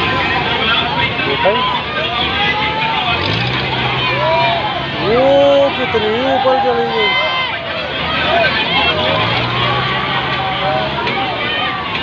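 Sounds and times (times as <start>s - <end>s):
children shouting: 0.0s - 12.0s
low engine hum: 0.0s - 12.0s
many voices overlapping: 0.0s - 12.0s.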